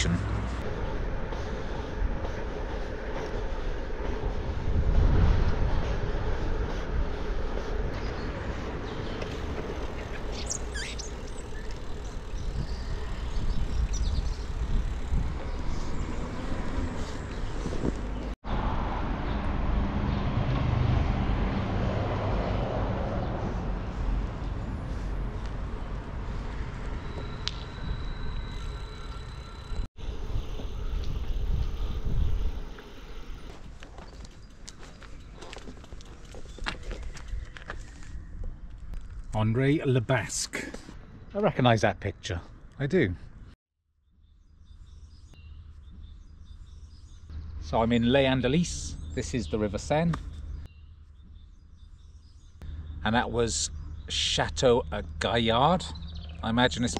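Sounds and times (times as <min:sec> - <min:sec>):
wind rushing over microphone: 0:00.4 - 0:10.7, 0:11.5 - 0:28.0, 0:30.0 - 0:33.8
bicycle tyre rumble on tarmac: 0:00.5 - 0:18.4, 0:21.4 - 0:39.4.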